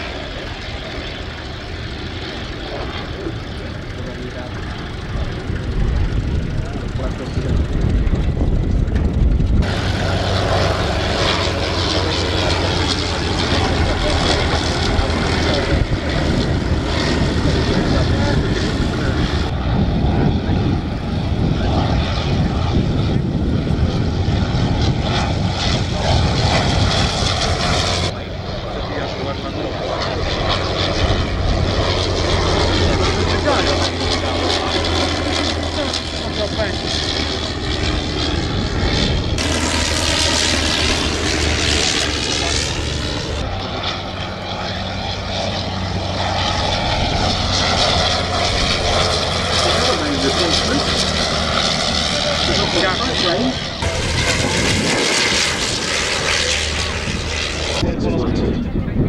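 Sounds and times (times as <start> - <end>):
biplane engine drone flying by: 0.0 - 59.0.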